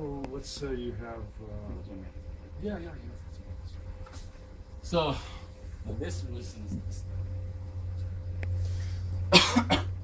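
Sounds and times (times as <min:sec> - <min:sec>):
person coughing: 0:09.3 - 0:10.0.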